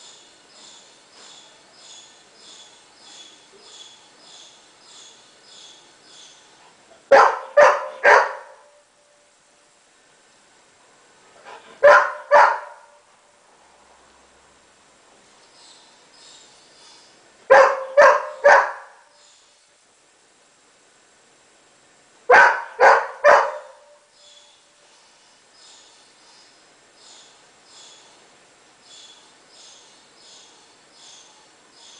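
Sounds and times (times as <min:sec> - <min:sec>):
dog barking loudly: 0:07.1 - 0:08.8, 0:11.4 - 0:13.0, 0:17.5 - 0:19.1, 0:22.3 - 0:24.0.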